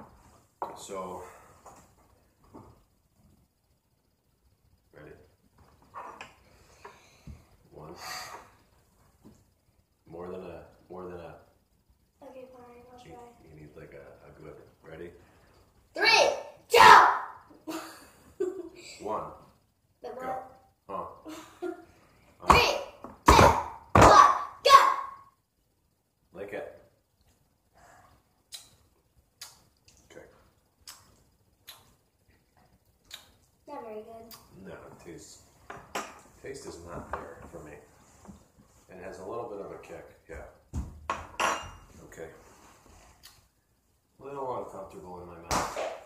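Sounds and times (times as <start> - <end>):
voices shouting: 16.0 - 17.4.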